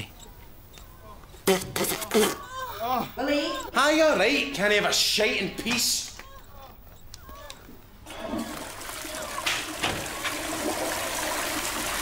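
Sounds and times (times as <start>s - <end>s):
toilet flushing: 8.1s - 12.0s.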